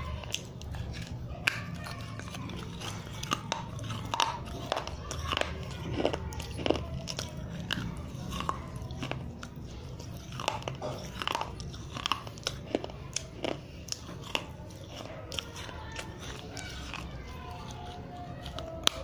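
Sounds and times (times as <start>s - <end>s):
crunching and chewing baked clay: 0.0s - 19.0s.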